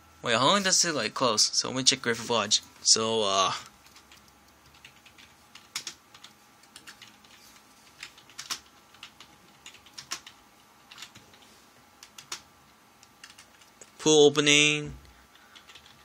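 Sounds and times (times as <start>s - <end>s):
laptop keyboard typing: 3.5s - 13.9s, 15.1s - 16.0s.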